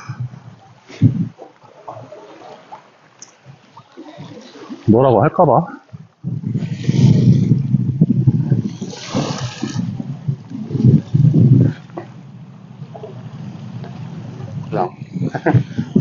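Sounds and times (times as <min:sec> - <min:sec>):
wind buffeting the microphone: 0:00.0 - 0:02.8, 0:03.4 - 0:16.0.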